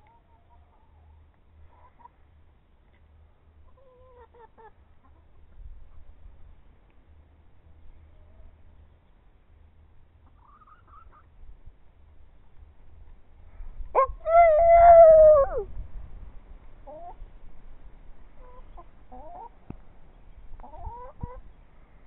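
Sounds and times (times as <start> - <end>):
chickens clucking: 0.0 - 6.1, 10.1 - 11.4, 16.7 - 17.3, 18.3 - 21.6
chicken drawn-out call: 10.2 - 11.3, 13.9 - 15.7.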